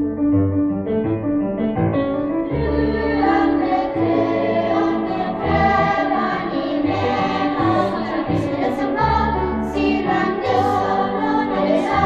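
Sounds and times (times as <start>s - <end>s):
children's choir singing: 2.5s - 12.0s.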